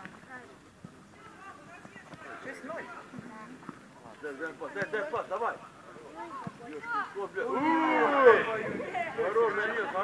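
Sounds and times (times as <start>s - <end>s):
children shouting and calling out: 6.7s - 9.3s.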